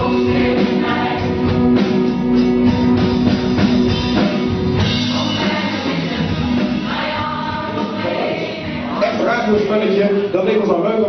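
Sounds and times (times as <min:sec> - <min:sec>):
drum kit playing: 0:00.0 - 0:10.8.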